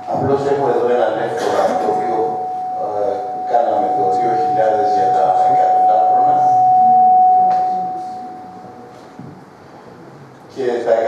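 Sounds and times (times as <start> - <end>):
man talking: 0.0 - 7.0
microphone feedback whistle: 1.6 - 9.2.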